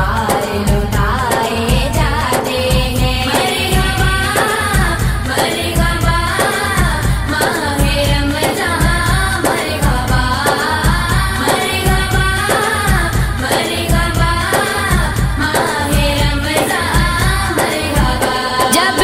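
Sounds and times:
low pulsing beat: 0.0 - 19.0.

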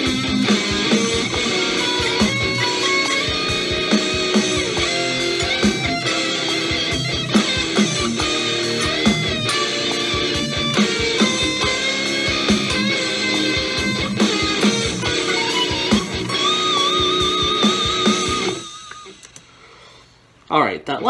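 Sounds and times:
electric guitar solo: 0.0 - 19.2
backing track with drums: 0.0 - 19.5.

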